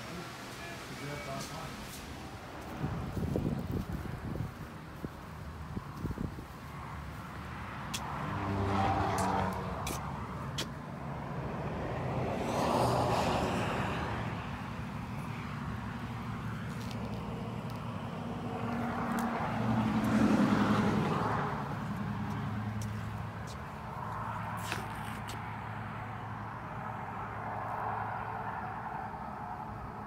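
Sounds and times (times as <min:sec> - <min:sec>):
vehicles passing by: 0:00.0 - 0:30.0.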